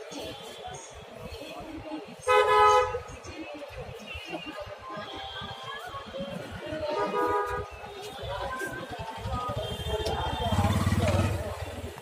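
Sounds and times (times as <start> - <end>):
vehicle horn honk: 9.5 - 10.9.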